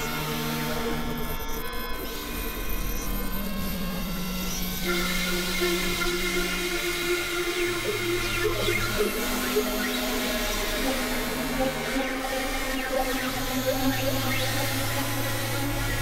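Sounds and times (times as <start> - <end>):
synthesizer drone tones: 4.8 - 16.0.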